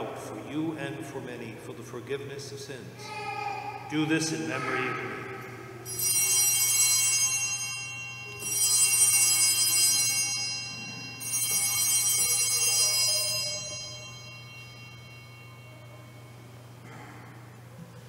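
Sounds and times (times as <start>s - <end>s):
altar bells ringing: 3.1s - 16.8s.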